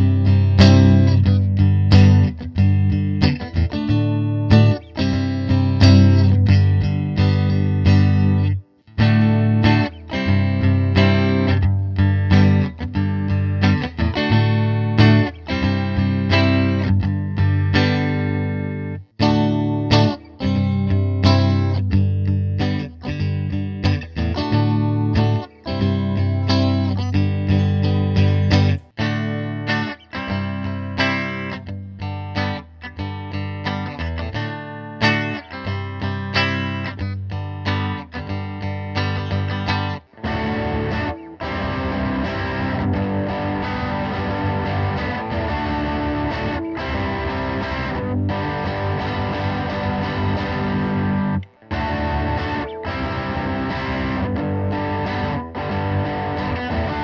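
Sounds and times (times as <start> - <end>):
electric guitar through amp: 0.0 - 57.0.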